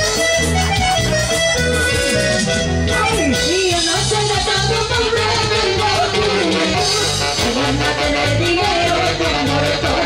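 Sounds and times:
live band playing dance music: 0.0s - 10.0s.

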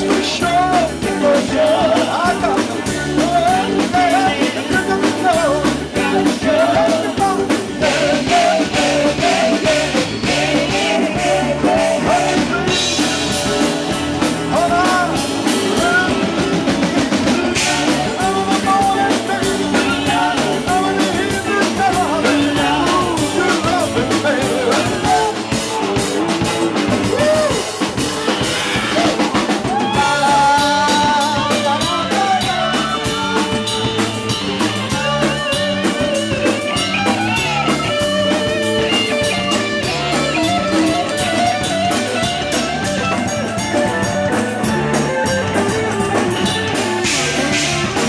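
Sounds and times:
bending lead melody: 0.0s - 48.0s
drum kit beat: 0.0s - 48.0s
electric guitar: 0.0s - 48.0s.

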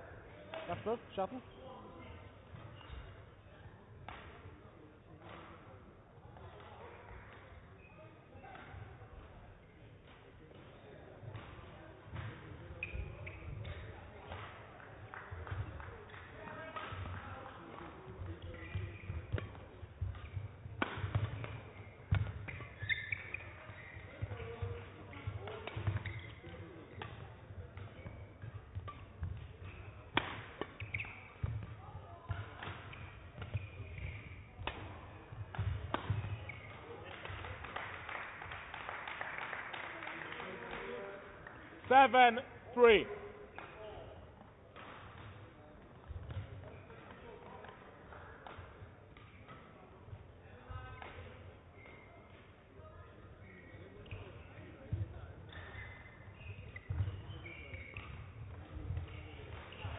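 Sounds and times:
rackets striking shuttlecock: 18.2s - 37.5s, 44.4s - 49.7s, 54.0s - 59.9s.

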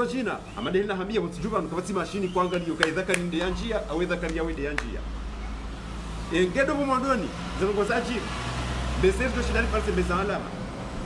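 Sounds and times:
man speaking: 0.0s - 5.1s.

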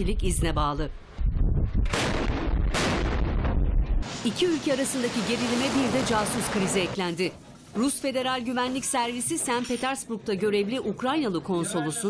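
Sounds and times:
steady low rumble: 0.0s - 4.2s.

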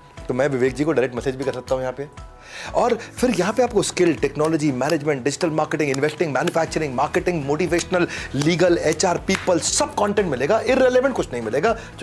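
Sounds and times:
man talking: 0.2s - 12.0s.

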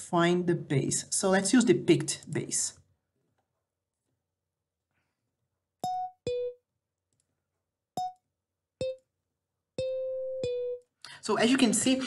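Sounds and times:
plucked bass notes: 5.8s - 6.6s, 9.8s - 10.8s.

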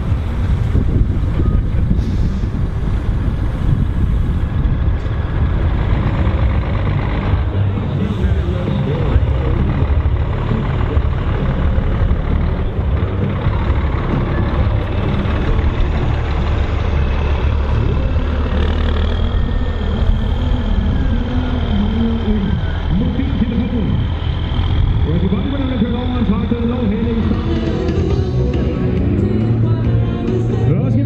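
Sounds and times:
truck diesel engine running: 0.0s - 31.0s.

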